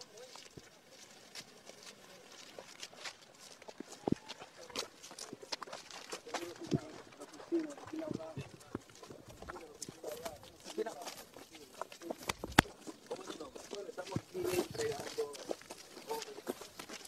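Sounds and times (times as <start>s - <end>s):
faint indistinct voices: 0.0s - 17.0s
footsteps on pavement: 0.0s - 17.0s.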